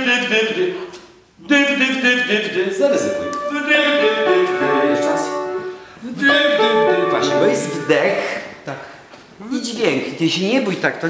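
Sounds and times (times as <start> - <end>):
piano accompaniment: 2.8 - 8.5.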